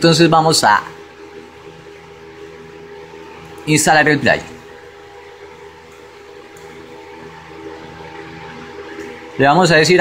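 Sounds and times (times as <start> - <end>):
faint even hum: 0.0 - 10.0.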